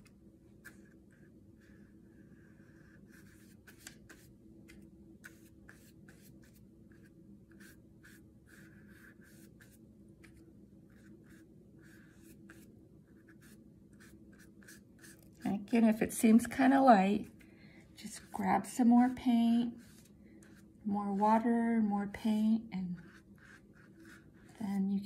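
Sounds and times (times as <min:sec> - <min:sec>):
low steady hum: 0:00.0 - 0:25.0
paintbrush strokes on paper: 0:00.5 - 0:15.8, 0:18.0 - 0:25.0.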